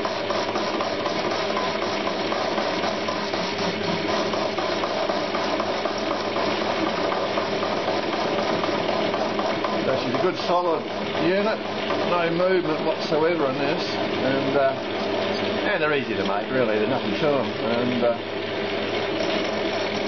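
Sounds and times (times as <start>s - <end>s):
metal lathe cutting steel: 0.0s - 20.0s.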